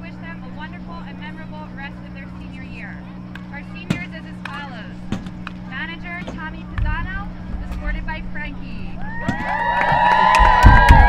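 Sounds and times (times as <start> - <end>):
low thumps: 0.0 - 11.0
girls shouting a cheer: 9.0 - 11.0.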